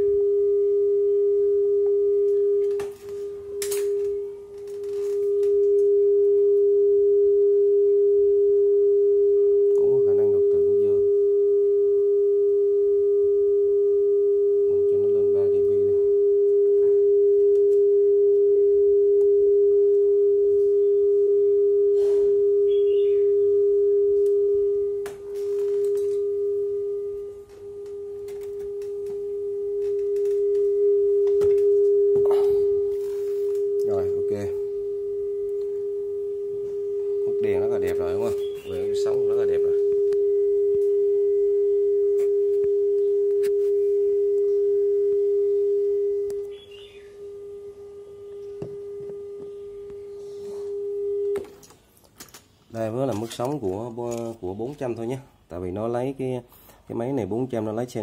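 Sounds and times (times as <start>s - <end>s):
steady test tone: 0.0s - 52.0s.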